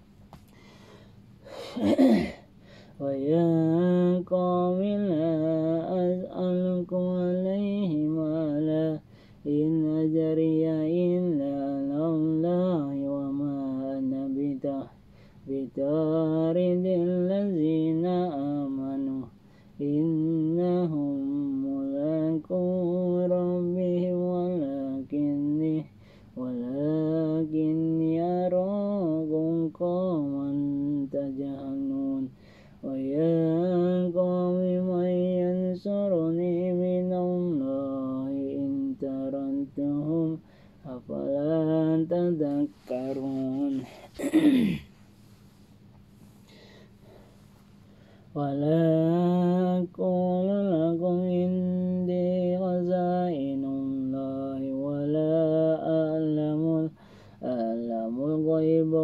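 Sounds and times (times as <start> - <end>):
man chanting recitation: 3.0 - 44.3, 48.4 - 59.0.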